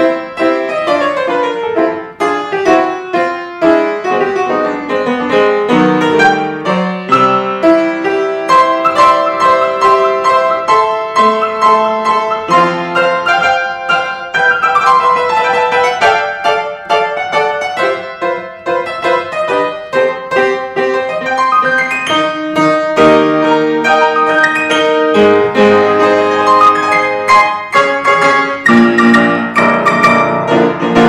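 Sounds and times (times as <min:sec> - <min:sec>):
upright piano playing: 0:00.0 - 0:31.0.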